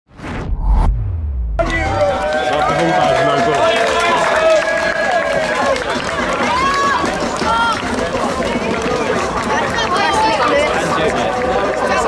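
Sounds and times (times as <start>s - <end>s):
spectators talking and calling out: 1.6s - 12.0s.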